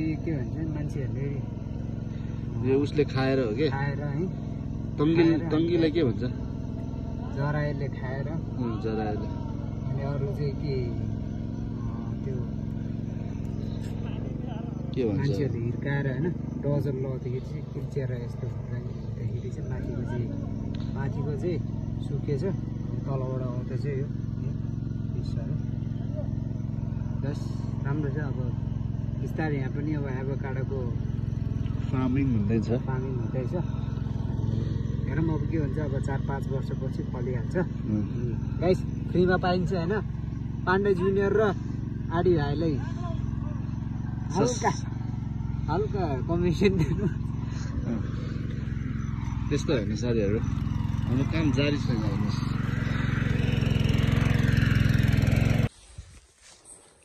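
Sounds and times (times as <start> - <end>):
people talking: 0.0 - 1.5, 5.0 - 6.4, 7.2 - 11.1, 11.7 - 12.6, 13.7 - 26.3, 29.2 - 31.0, 31.7 - 33.8, 35.0 - 43.6, 44.2 - 44.9, 45.6 - 48.2, 49.5 - 52.6
small engine running: 0.0 - 57.0.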